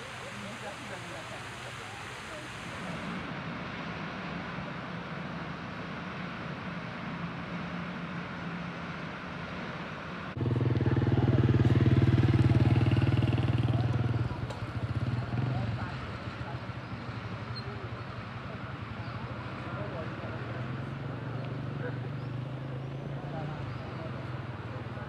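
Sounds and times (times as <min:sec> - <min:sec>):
vehicle engine running: 0:00.0 - 0:03.4, 0:10.3 - 0:25.0.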